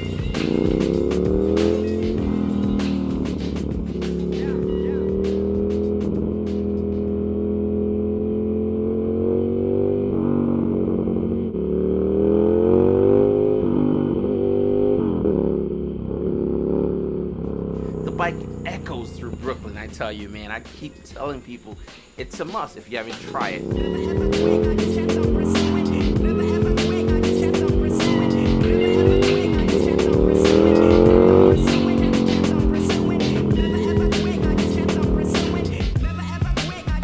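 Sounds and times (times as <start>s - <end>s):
motorcycle engine revving: 0.0s - 21.8s, 22.5s - 37.0s.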